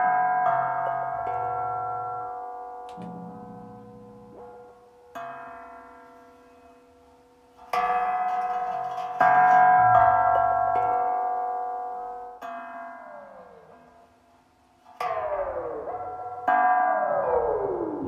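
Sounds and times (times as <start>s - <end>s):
synthesizer bell-like tones: 2.9s - 4.6s.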